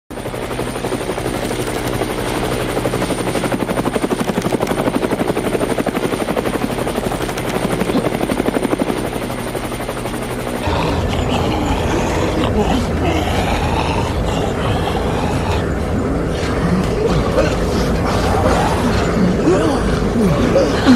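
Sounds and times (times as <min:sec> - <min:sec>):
helicopter rotor blades chopping: 0:00.1 - 0:20.9.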